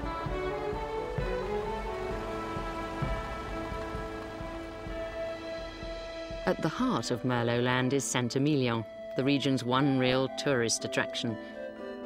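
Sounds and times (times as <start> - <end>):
sustained chords music: 0.0 - 7.9.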